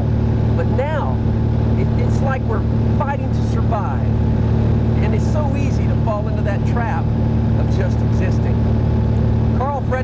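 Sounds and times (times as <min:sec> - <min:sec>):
propeller airplane drone in cabin: 0:00.0 - 0:10.0.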